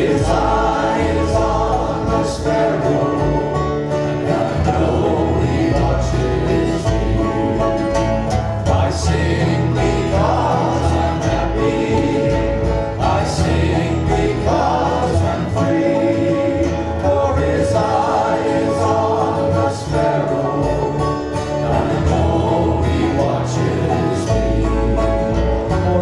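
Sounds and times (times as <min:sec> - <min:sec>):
banjo: 0:00.0 - 0:26.0
congregation singing a hymn: 0:00.0 - 0:26.0
strummed acoustic guitars: 0:00.0 - 0:26.0.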